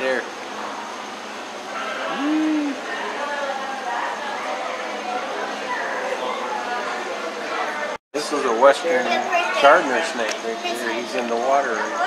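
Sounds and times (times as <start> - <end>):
indistinct background chatter: 1.7 - 12.0
short rising tone: 2.1 - 2.8.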